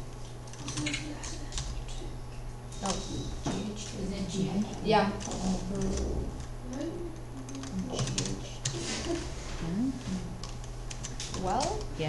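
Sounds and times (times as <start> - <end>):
keyboard typing: 0.0 - 2.1, 4.6 - 9.3, 10.2 - 11.9
steady low hum: 0.0 - 12.0.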